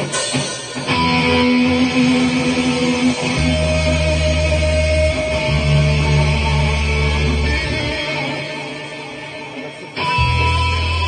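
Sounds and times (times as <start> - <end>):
heavy low guitar notes: 0.0 - 11.0
rock band playing electric guitars: 0.0 - 11.0.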